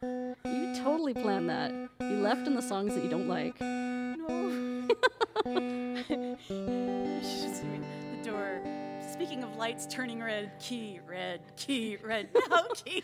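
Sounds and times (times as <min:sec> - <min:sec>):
acoustic guitar plucked and strummed: 0:00.0 - 0:13.0.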